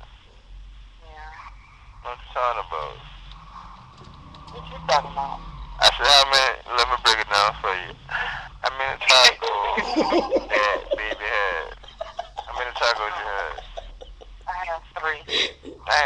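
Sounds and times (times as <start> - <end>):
person talking over phone line: 2.1 - 3.1, 4.6 - 16.0.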